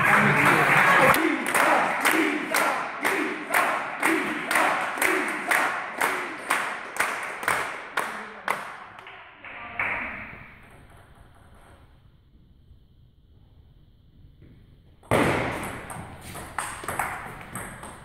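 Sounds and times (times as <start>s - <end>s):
spectators clapping in unison: 0.0s - 9.2s.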